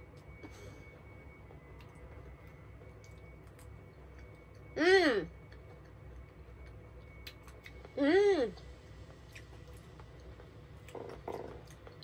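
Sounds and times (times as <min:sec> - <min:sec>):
faint high whine: 0:00.0 - 0:12.0
low steady hum: 0:00.0 - 0:12.0.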